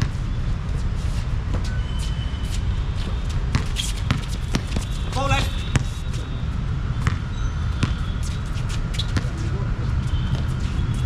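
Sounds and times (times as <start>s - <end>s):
basketball bouncing on hard court: 3.1s - 6.0s, 7.0s - 9.4s.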